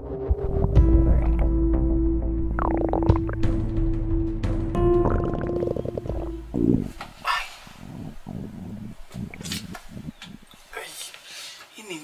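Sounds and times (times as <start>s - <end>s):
background music: 0.0s - 7.0s
stomach growling: 0.8s - 1.5s, 2.6s - 3.5s, 5.0s - 10.6s
man breathing and groaning: 6.5s - 11.7s.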